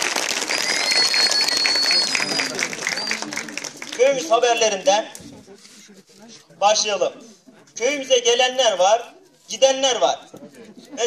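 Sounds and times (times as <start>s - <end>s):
audience clapping: 0.0s - 4.4s
steady high whistle: 0.4s - 3.4s.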